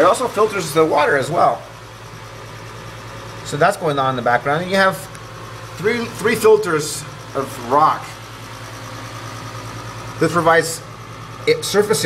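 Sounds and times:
aquarium pump humming: 0:00.0 - 0:12.0.

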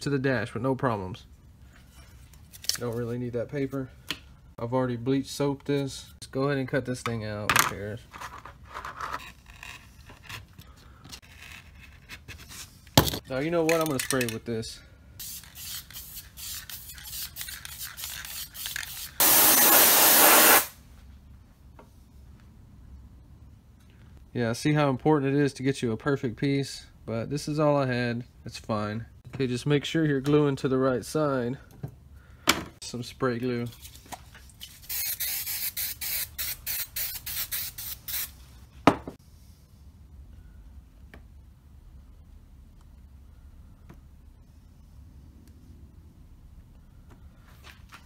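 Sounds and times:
aerosol spray hissing: 0:15.2 - 0:20.8, 0:34.9 - 0:38.4
spray can rattling clicks: 0:15.3 - 0:20.7.

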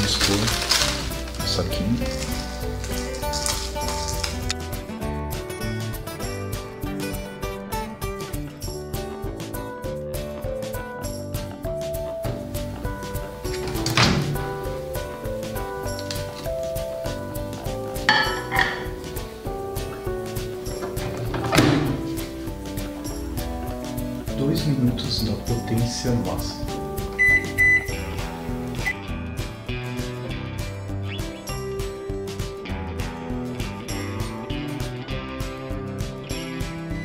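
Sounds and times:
background music: 0:00.0 - 0:37.0
microwave keypad beeps: 0:27.2 - 0:28.0, 0:28.8 - 0:29.0.

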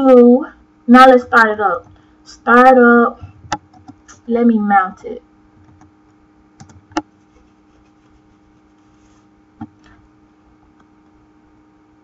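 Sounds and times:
faint steady hum: 0:00.0 - 0:12.0
computer keyboard keystrokes: 0:05.6 - 0:05.9, 0:06.6 - 0:07.1.

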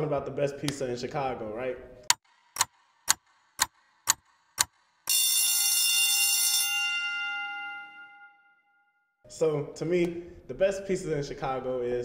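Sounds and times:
stopwatch ticking: 0:02.1 - 0:05.4
bell ding: 0:05.1 - 0:09.0.

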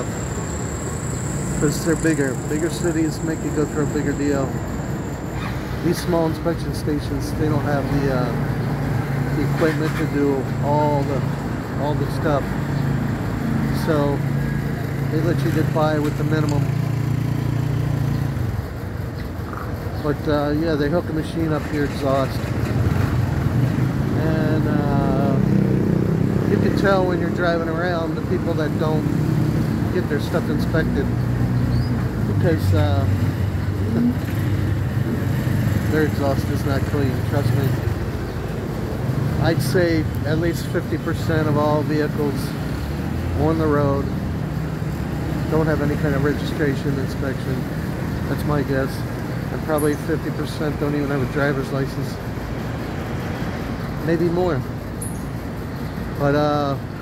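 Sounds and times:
motorcycle engines in traffic: 0:00.0 - 0:57.0
vehicles passing: 0:00.0 - 0:57.0.

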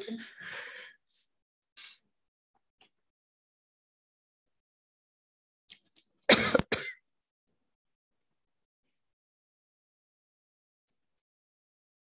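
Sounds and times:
woman clearing her throat: 0:06.3 - 0:07.0.

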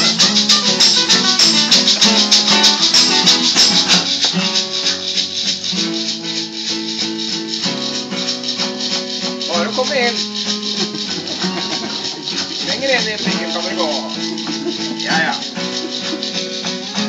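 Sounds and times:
bass guitar: 0:00.0 - 0:08.1, 0:08.8 - 0:17.0
high rattle keeping time: 0:00.0 - 0:17.0
strummed acoustic guitars: 0:00.0 - 0:17.0.

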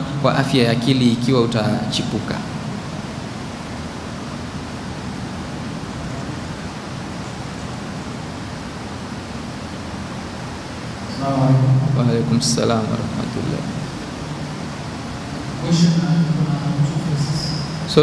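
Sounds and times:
steady background hiss: 0:00.0 - 0:18.0.

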